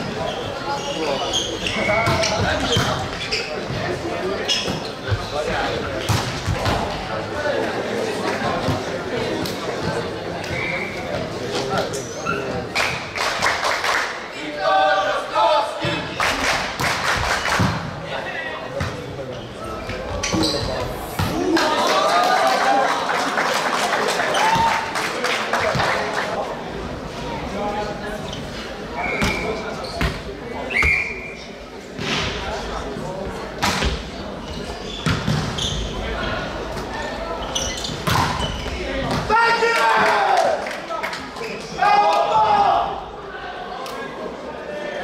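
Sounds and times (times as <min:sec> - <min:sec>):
players calling and chatting: 0:00.0 - 0:22.1, 0:24.0 - 0:45.0
crowd voices: 0:00.0 - 0:45.0
players shouting: 0:39.0 - 0:40.6.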